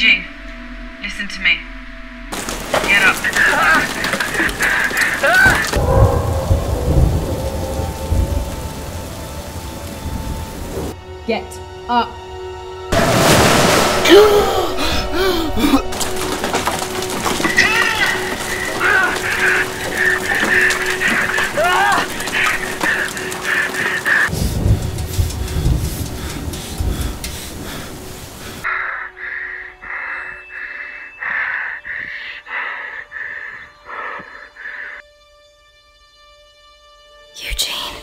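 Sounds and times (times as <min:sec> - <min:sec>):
film music: 0:00.0 - 0:38.0
deep rumble: 0:02.5 - 0:11.0, 0:12.9 - 0:28.7
gasping voice: 0:14.1 - 0:15.9.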